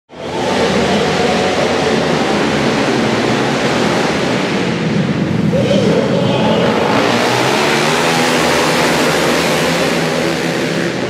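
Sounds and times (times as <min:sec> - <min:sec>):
motorcycles accelerating hard: 0:00.1 - 0:11.0.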